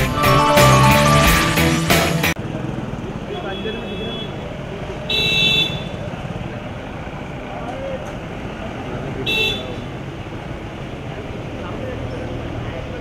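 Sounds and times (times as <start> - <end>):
street traffic noise: 0.0 - 13.0.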